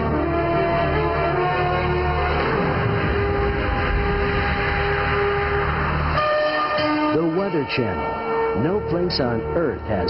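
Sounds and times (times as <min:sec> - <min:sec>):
low synth drone: 0:00.0 - 0:10.0
hissing wash of noise: 0:00.1 - 0:08.4.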